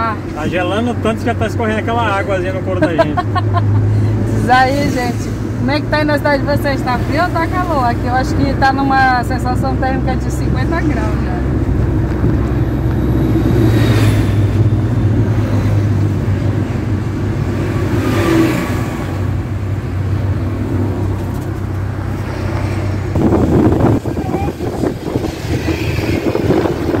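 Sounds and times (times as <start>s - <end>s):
car engine hum: 0.0s - 27.0s.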